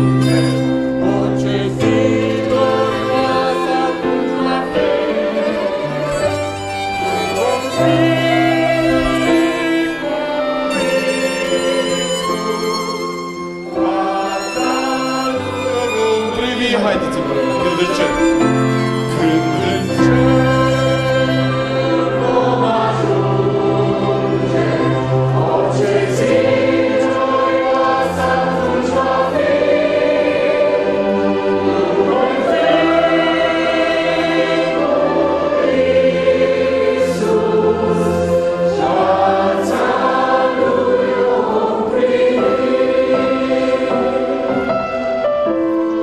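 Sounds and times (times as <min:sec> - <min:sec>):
violin: 0:00.0 - 0:46.0
voices singing a hymn: 0:00.0 - 0:46.0
clarinet: 0:02.8 - 0:22.9.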